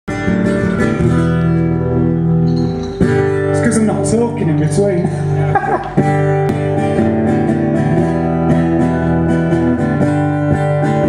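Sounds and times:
acoustic guitar strumming: 0:00.1 - 0:11.0
man's voice: 0:03.5 - 0:05.6.

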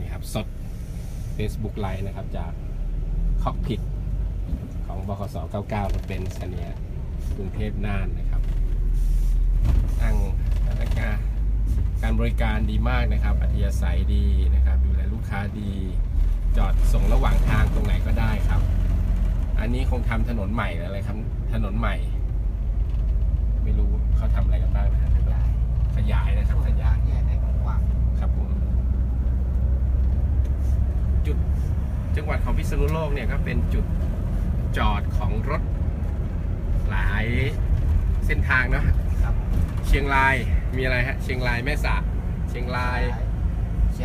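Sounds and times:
coach engine and road rumble: 0:00.0 - 0:44.0.

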